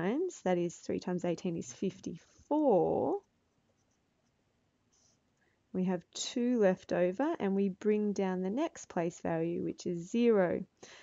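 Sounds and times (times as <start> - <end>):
person speaking: 0.0 - 3.3.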